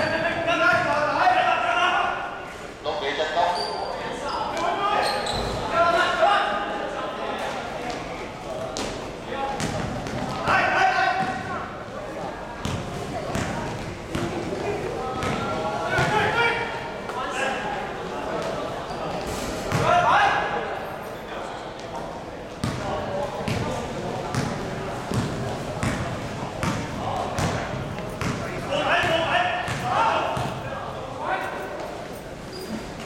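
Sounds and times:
basketball bouncing on court floor: 9.6s - 10.5s, 12.6s - 14.6s, 15.2s - 16.2s, 22.6s - 22.8s, 23.5s - 30.6s
echoing shouting voices: 14.6s - 18.0s.

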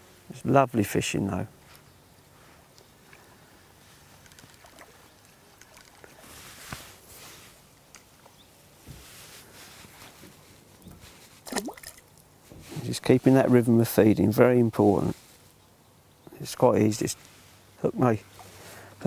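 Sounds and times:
water sloshing and trickling: 2.8s - 12.8s.

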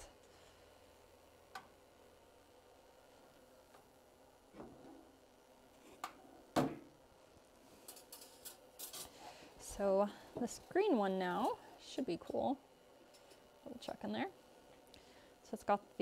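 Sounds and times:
metal scraping on kiln: 7.8s - 9.2s.

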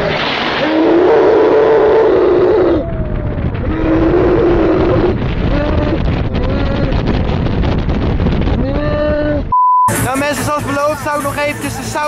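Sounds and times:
wind buffeting microphone: 0.0s - 9.6s.

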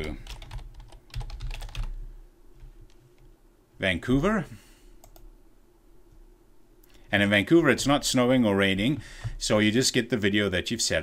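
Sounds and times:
typing on computer keyboard: 0.0s - 2.0s.

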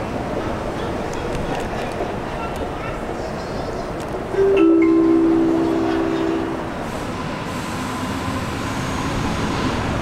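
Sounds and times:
train running rumble: 0.0s - 10.0s
train horn chord: 4.4s - 7.0s.

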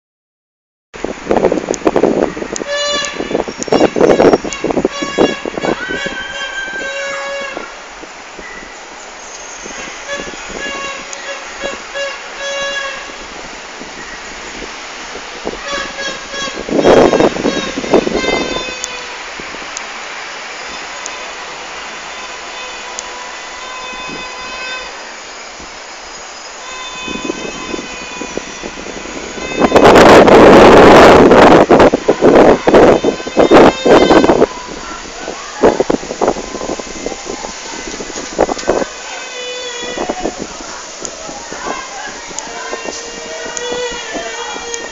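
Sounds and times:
loud noisy bursts: 1.0s - 44.9s
horns tooting: 2.3s - 44.9s.

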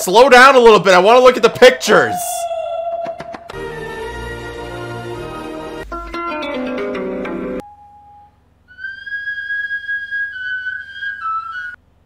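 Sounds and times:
high whistle-like tone: 1.5s - 3.6s, 7.6s - 11.8s.

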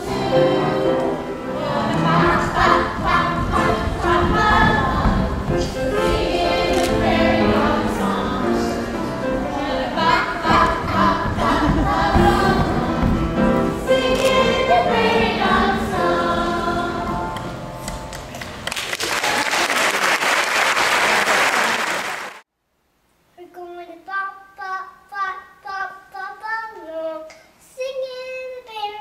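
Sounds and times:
children's choir singing: 0.0s - 18.0s
audience applause: 18.3s - 22.4s
small boy singing alone: 23.4s - 29.0s.

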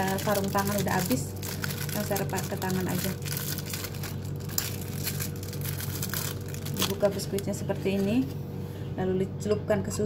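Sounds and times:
plastic packet crinkling: 0.0s - 8.4s.

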